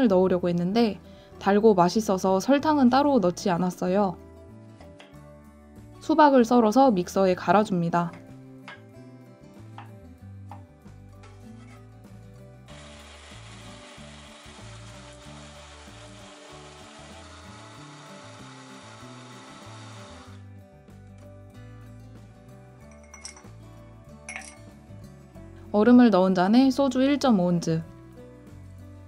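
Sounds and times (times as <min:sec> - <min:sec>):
soft background music: 0:00.0 - 0:29.0
blender running: 0:12.7 - 0:20.4.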